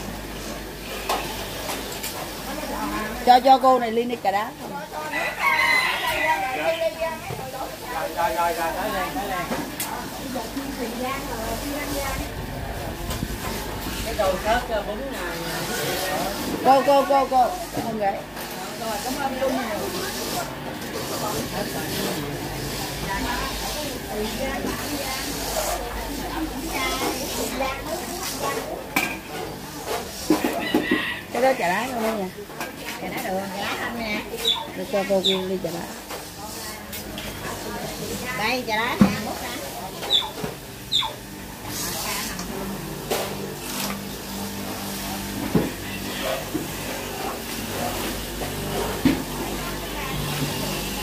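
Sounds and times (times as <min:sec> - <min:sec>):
background chatter: 0:00.0 - 0:51.0
voices talking: 0:00.0 - 0:51.0
rooster crowing: 0:05.0 - 0:07.1, 0:30.4 - 0:31.7.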